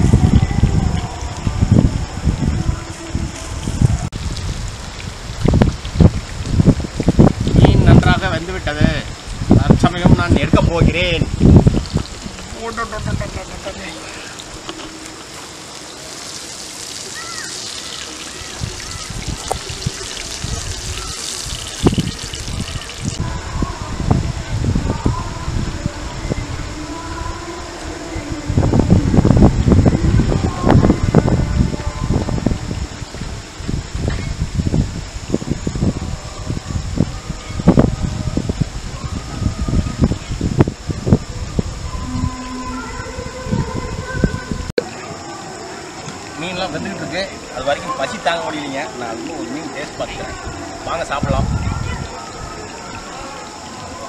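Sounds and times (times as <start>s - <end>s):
fish sizzling in hot oil: 10.8s - 23.2s.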